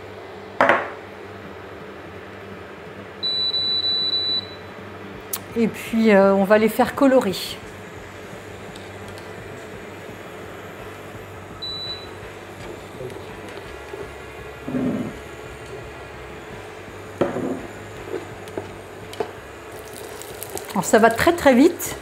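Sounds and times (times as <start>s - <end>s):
nuts sizzling in a frying pan: 13.0s - 22.0s
spatula scraping and knocking pan: 14.7s - 15.2s.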